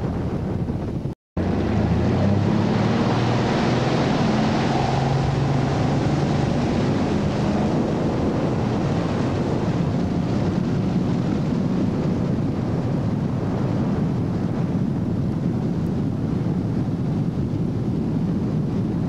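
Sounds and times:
wind noise on microphone: 0.0s - 19.0s
boat engine running: 0.6s - 19.0s
rushing water: 1.4s - 14.7s.

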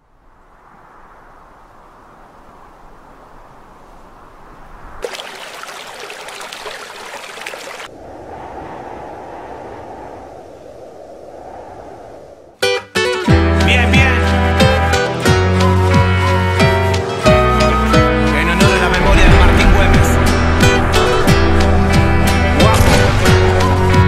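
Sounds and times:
rushing river water: 5.0s - 7.9s.

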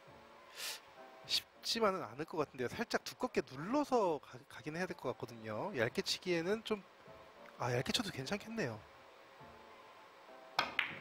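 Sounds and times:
billiard balls colliding: 10.6s - 11.0s
cue tip striking ball: 10.6s - 11.0s.

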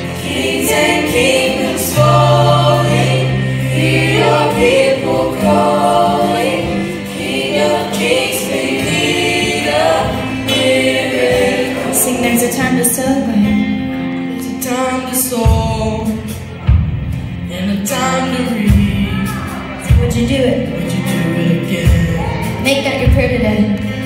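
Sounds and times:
long held bass notes: 0.0s - 14.5s
choir singing gospel: 0.0s - 16.6s
lead singer: 0.0s - 22.8s.

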